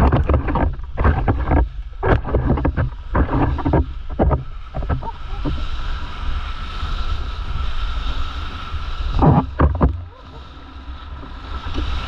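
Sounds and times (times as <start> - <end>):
waves splashing over camera: 0.0 - 12.0.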